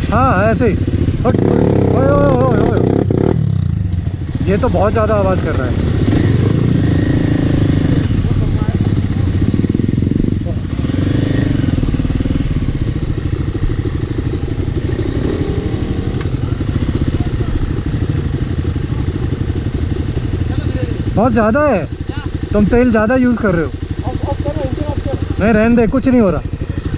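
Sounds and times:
dirt bike engines chugging: 0.0s - 26.9s.

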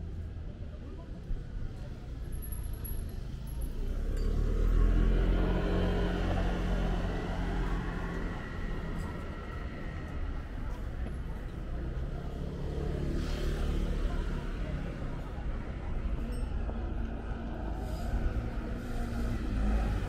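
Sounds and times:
people's voices: 0.0s - 20.0s
steady street noise: 0.0s - 20.0s
vehicle engine passing: 3.8s - 10.8s.

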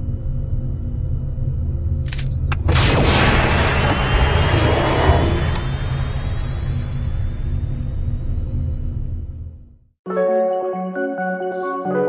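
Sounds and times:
deep steady rumble: 0.0s - 9.9s
noisy wash: 2.7s - 9.2s.

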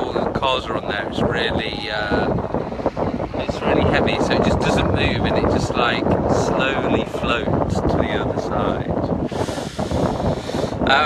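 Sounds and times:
man talking: 0.0s - 11.0s
wind buffeting microphone: 0.0s - 11.0s.

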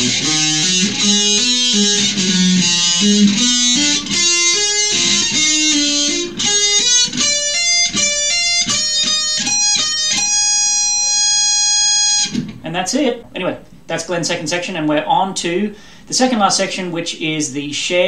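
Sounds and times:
electric guitar fast lead run: 0.0s - 12.4s.

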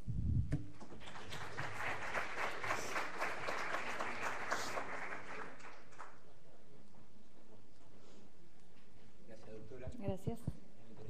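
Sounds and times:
audience applauding: 0.9s - 6.3s.

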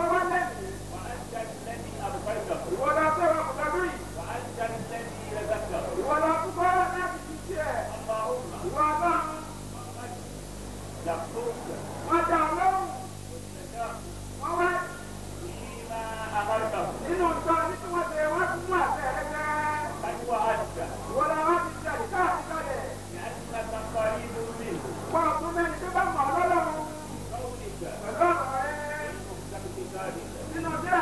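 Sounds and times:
low electrical hum: 0.0s - 31.0s.

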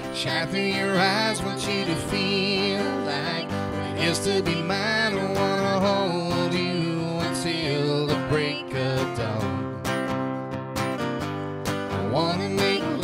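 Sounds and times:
person singing: 0.0s - 9.8s, 11.9s - 13.0s
acoustic guitar strumming: 0.0s - 13.0s.

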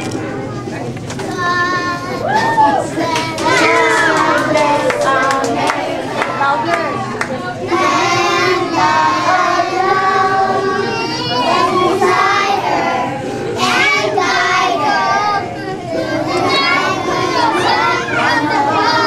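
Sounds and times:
young children singing: 1.2s - 19.0s.

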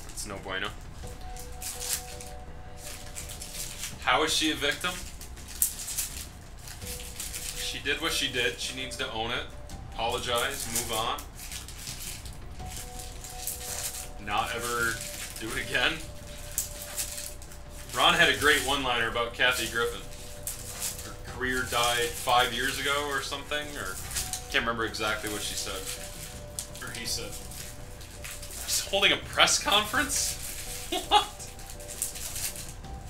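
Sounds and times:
foil wrappers crinkling and tearing: 0.0s - 33.0s.

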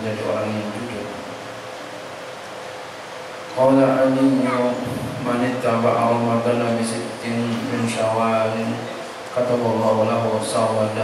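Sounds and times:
background noise hiss: 0.0s - 11.0s.

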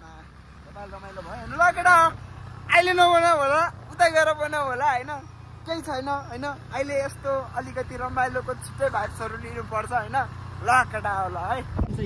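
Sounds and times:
motorbike hum: 0.0s - 12.0s
man calling out: 1.2s - 8.3s.

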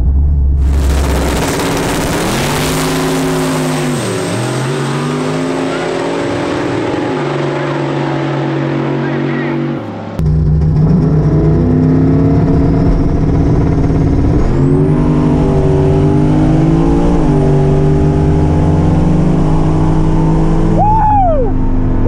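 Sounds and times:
car engine at full throttle: 0.0s - 22.0s.

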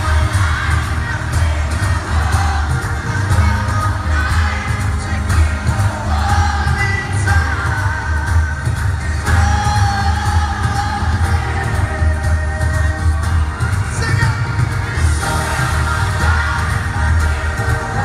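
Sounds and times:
bass and drums pounding: 0.0s - 18.0s
crowd: 0.0s - 18.0s
man singing lead vocals: 0.0s - 18.0s.

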